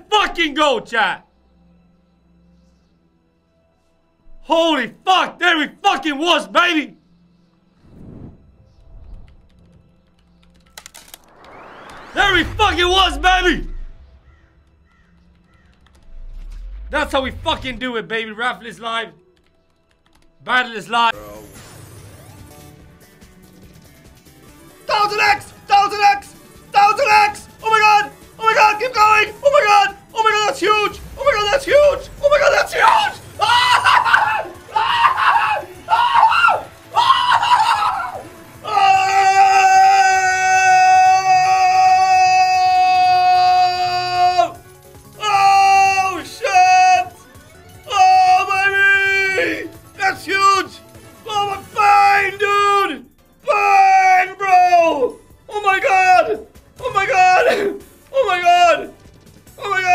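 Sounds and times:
faint music: 0.0s - 59.9s
rising whoosh: 7.8s - 9.9s, 10.9s - 14.6s, 16.0s - 17.8s
man screaming with excitement: 31.2s - 44.6s, 45.2s - 47.1s, 47.9s - 49.7s.

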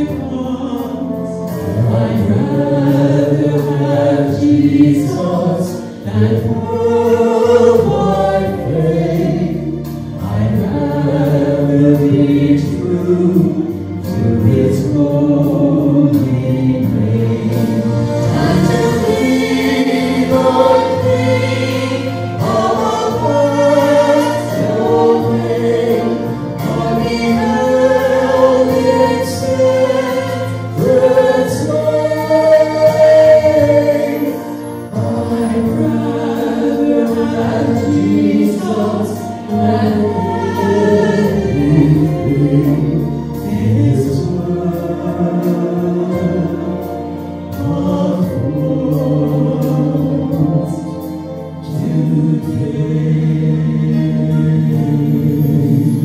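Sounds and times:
man and woman singing duet: 0.0s - 56.0s.

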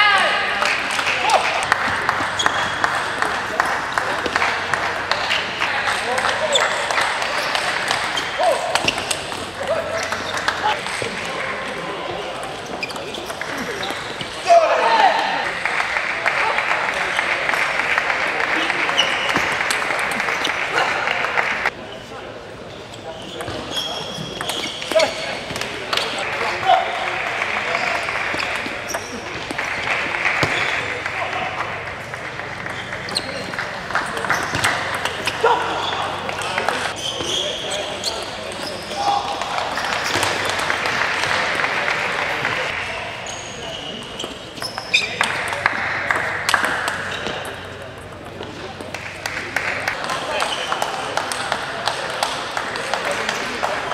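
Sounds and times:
crowd applause and chatter: 0.0s - 53.9s
indistinct voices murmuring: 0.0s - 53.9s
table tennis ball bouncing: 44.2s - 49.3s.

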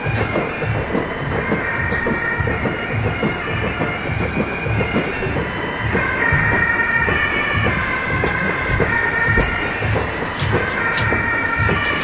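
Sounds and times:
parade drum beat: 0.0s - 12.0s.

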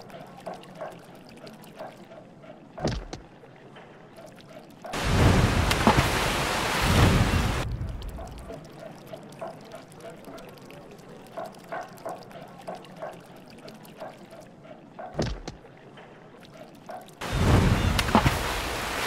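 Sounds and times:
water splashing and sloshing: 0.0s - 19.0s.

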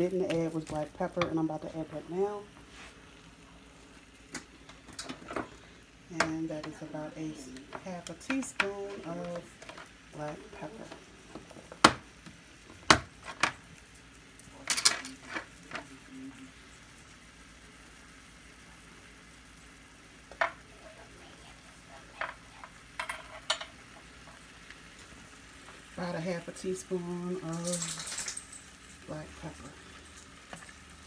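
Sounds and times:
faint food sizzling: 0.0s - 31.0s.

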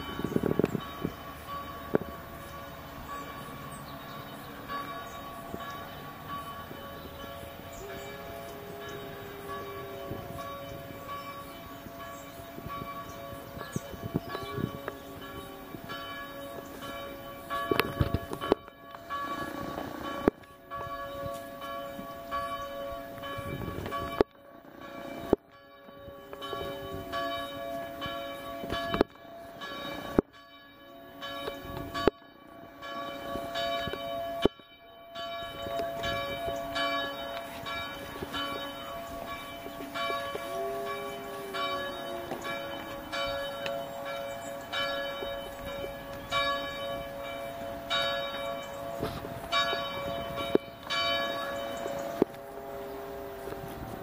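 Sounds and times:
church bells ringing: 0.0s - 54.0s.

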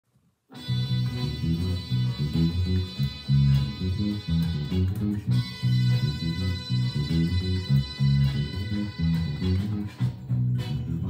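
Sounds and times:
fingerpicked electric bass: 0.5s - 11.0s
recorded song playing: 0.5s - 11.0s.

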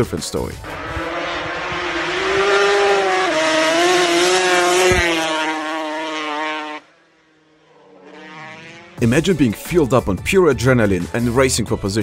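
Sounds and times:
quad bike engine revving: 0.6s - 9.4s.

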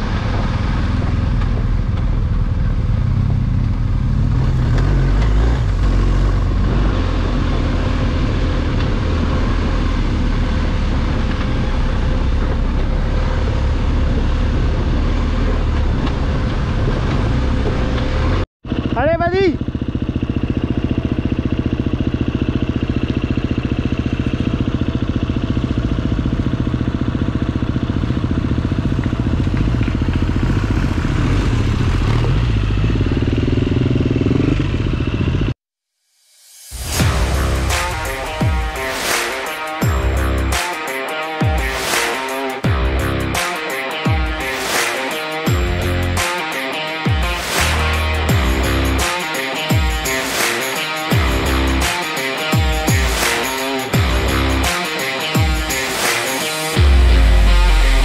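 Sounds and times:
motorcycle engine rumbling: 0.0s - 35.6s, 36.9s - 40.6s, 47.2s - 50.4s, 51.1s - 51.9s, 53.8s - 55.9s
high sliding tone: 36.4s - 42.6s.

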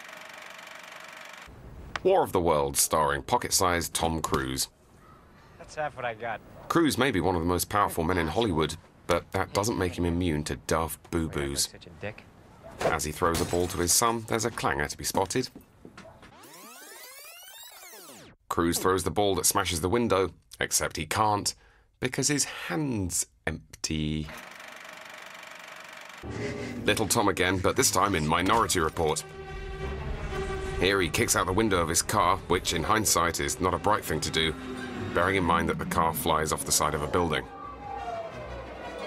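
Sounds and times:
film projector clatter: 0.0s - 1.5s, 24.3s - 26.3s
rewind sound effect: 16.3s - 18.4s, 24.4s - 37.5s
low rumble: 28.5s - 37.4s.

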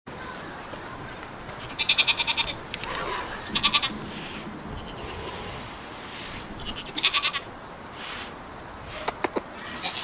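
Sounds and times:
goat bleating: 1.6s - 4.0s, 4.7s - 5.2s, 6.6s - 7.5s, 9.6s - 10.0s.

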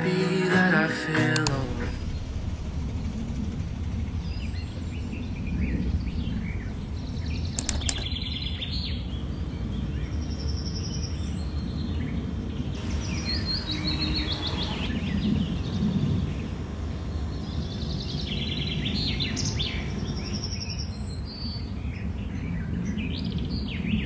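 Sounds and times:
steady low rumble: 0.0s - 24.0s
sharp click: 1.3s - 1.8s, 7.5s - 8.2s
bird chirps: 4.1s - 24.0s.

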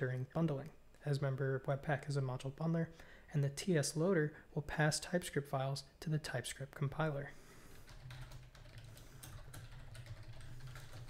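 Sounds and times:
typing on computer keyboard: 7.8s - 11.0s.

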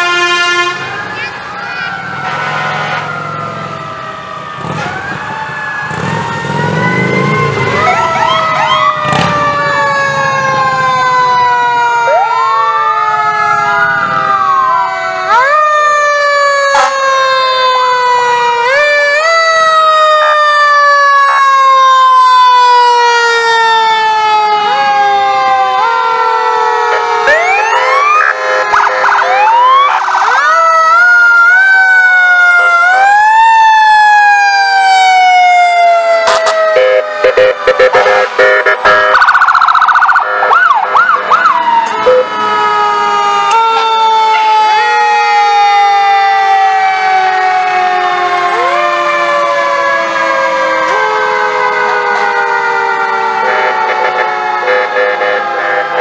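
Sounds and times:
loud horn blasts: 0.0s - 1.0s, 2.1s - 3.3s, 26.9s - 29.3s, 36.2s - 39.3s, 53.4s - 56.0s
fire engine sirens wailing: 0.0s - 56.0s.

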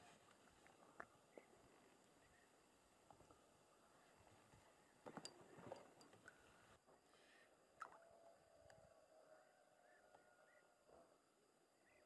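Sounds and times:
distant bird chirps: 9.2s - 12.0s.

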